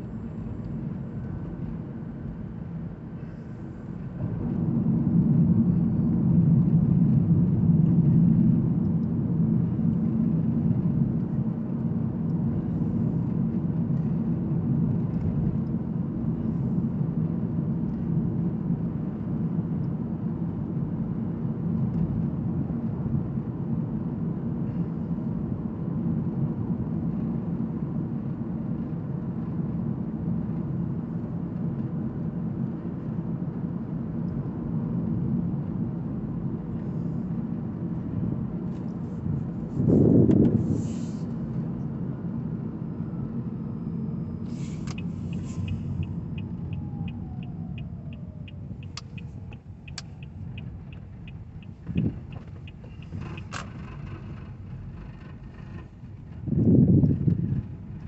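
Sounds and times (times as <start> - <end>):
road and tyre noise in car cabin: 0.0 - 58.0.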